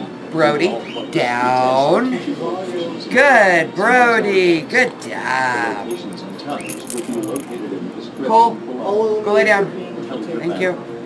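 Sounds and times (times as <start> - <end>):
dog collar tags jingling: 5.8 - 7.7.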